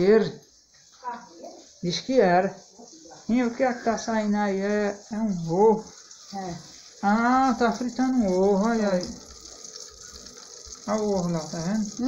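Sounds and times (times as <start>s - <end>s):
egg sizzling in oil: 0.0s - 12.0s.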